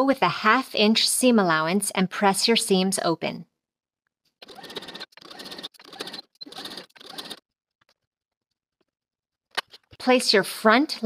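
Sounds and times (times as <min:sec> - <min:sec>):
sewing machine stitching: 0:04.4 - 0:07.4.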